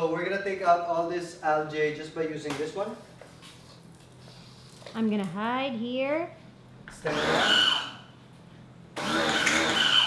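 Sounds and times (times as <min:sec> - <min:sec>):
pressure washer motor whining: 0:07.0 - 0:08.0, 0:09.0 - 0:10.0.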